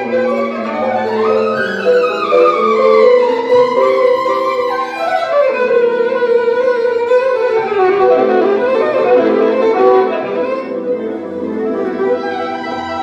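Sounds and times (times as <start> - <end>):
electric violin melody: 0.0 - 13.0.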